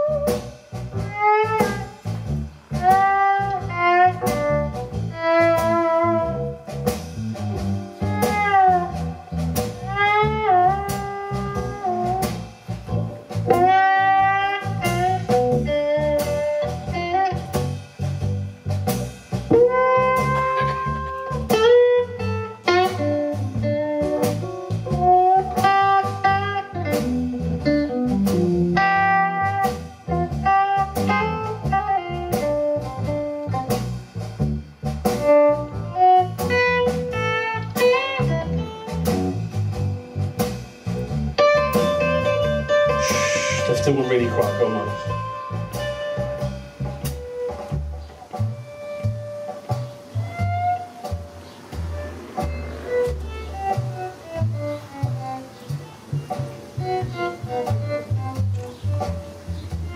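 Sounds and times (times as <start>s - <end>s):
electric bass: 0.0s - 59.9s
steady drum beat: 0.0s - 59.9s
electric guitar solo: 41.4s - 46.4s.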